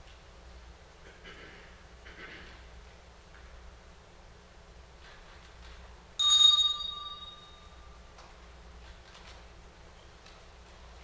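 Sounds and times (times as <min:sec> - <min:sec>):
handbell ringing: 0:06.2 - 0:08.0.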